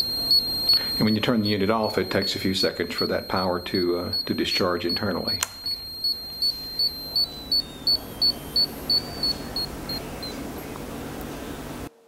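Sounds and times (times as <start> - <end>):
short high warning beeps: 0.0 - 10.4.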